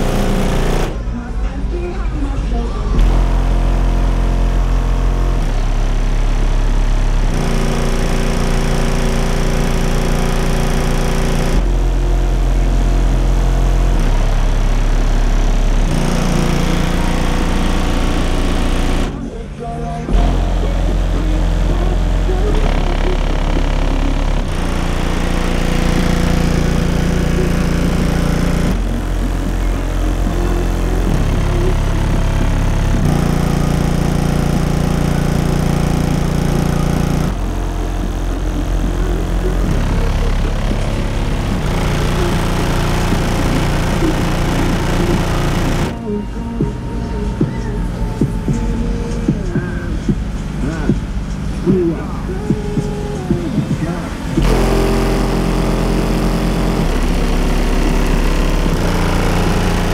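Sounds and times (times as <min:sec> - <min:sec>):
loud bass-heavy music: 0:00.0 - 0:59.9.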